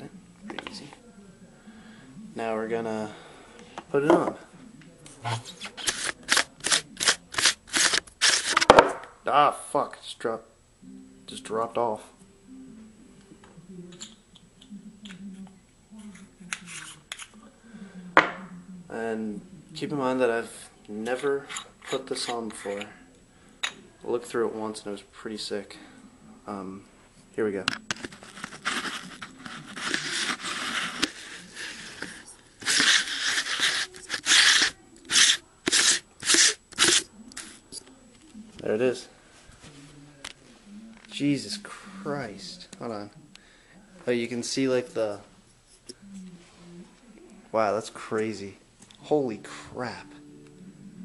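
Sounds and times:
lens handling scraping noise: 0:05.7 - 0:08.7, 0:27.9 - 0:37.5.

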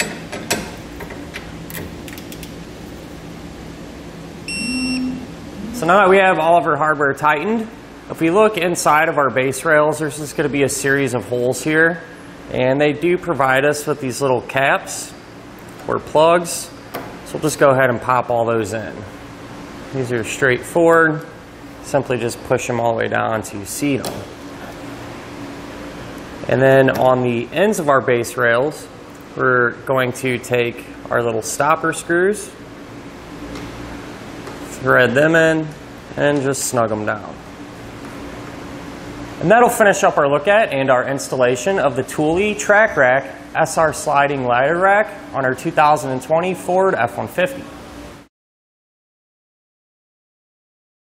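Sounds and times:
room ventilation hum: 0:00.0 - 0:48.3
short electronic beep: 0:04.5 - 0:05.8.

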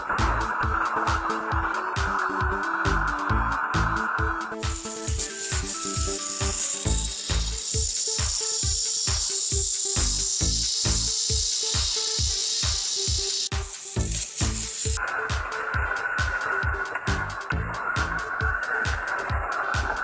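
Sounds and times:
background music with beat: 0:00.0 - 0:20.0
toy train motors whirring: 0:00.0 - 0:20.0.

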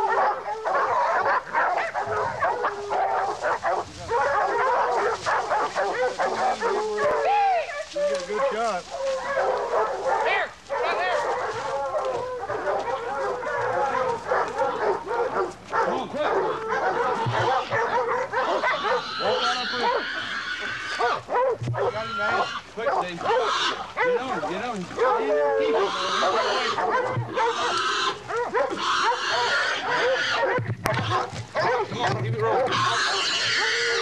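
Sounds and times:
dogs barking and baying: 0:00.0 - 0:34.0.

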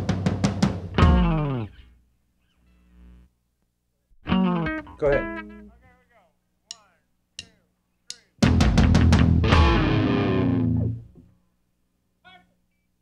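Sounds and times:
drum hits: 0:00.0 - 0:01.6, 0:08.4 - 0:10.0
electric guitar notes: 0:01.0 - 0:01.8, 0:04.2 - 0:05.7, 0:08.4 - 0:11.1.

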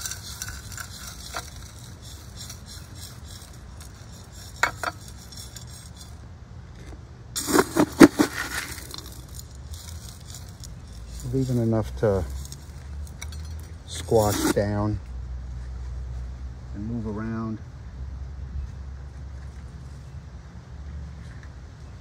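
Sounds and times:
soil grains rattling into pot: 0:00.0 - 0:06.2, 0:07.4 - 0:14.6.

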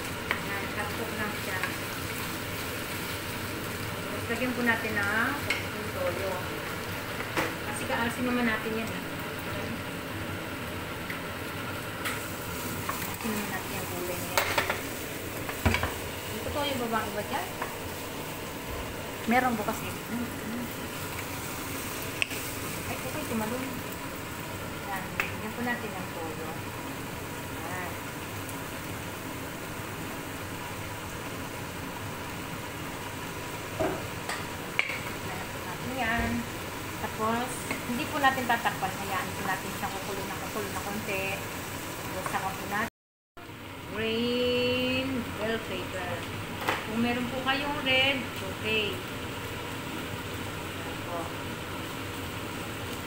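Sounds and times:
food sizzling in a frying pan: 0:00.0 - 0:53.0.

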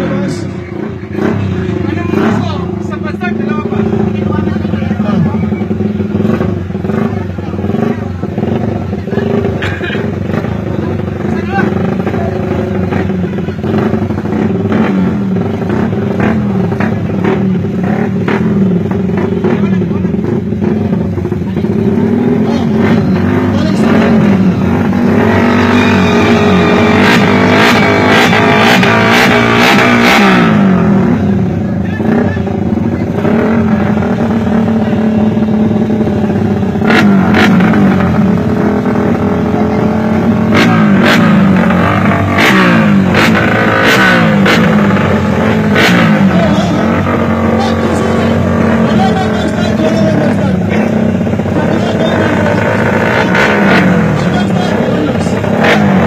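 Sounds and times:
racing engine revving: 0:00.0 - 0:56.0.

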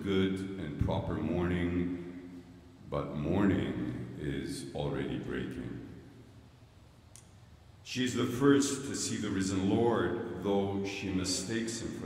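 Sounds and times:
man speaking: 0:00.0 - 0:06.0, 0:07.8 - 0:12.0.

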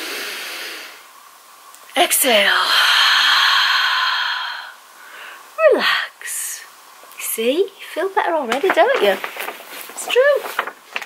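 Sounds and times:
woman exhaling slowly: 0:02.6 - 0:05.6.

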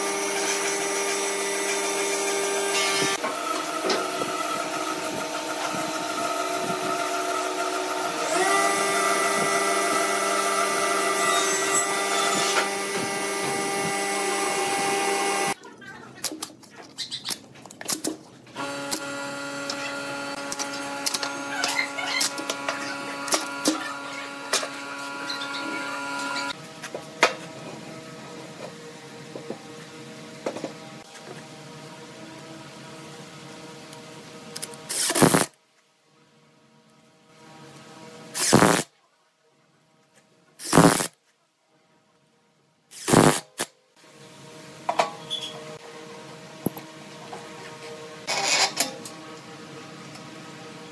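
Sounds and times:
electric machine hum: 0:00.0 - 0:15.6, 0:18.5 - 0:26.9.

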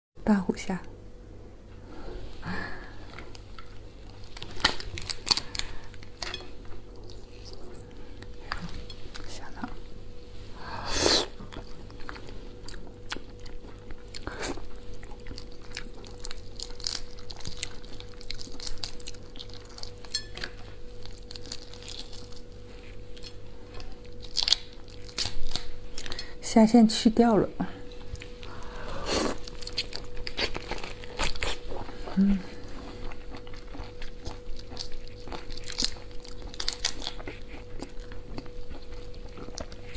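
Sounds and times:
prawn shell crackling: 0:15.0 - 0:20.3.

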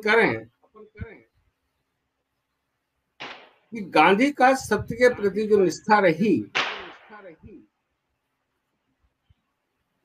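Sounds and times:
man speaking: 0:00.0 - 0:01.2, 0:03.8 - 0:07.7.

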